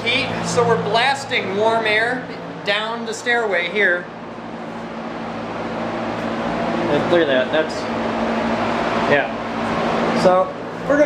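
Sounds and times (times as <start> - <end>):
heater blower rushing air: 0.0 - 11.0.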